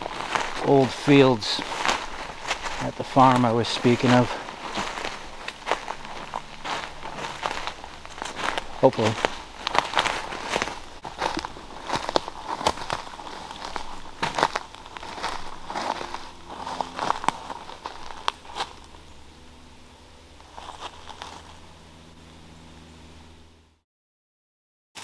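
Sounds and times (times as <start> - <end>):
footsteps through forest undergrowth: 0.0 - 21.8
faint low hum: 0.0 - 23.8.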